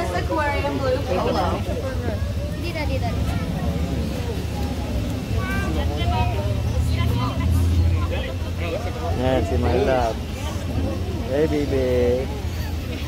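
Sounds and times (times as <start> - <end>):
people talking indistinctly: 0.0 - 13.0.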